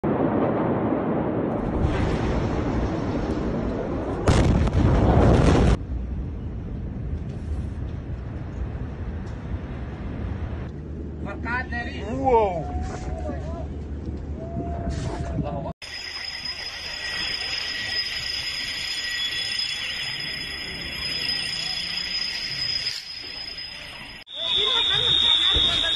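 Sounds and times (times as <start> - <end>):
explosion blast: 0.0 - 10.7
fire rumbling and crackling: 0.0 - 24.3
fast warbling alarm: 15.8 - 25.9
car alarms sounding: 23.4 - 25.9.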